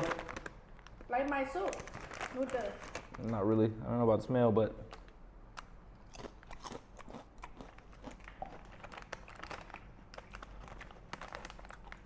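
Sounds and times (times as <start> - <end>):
potato chip crunching: 6.0 - 12.0.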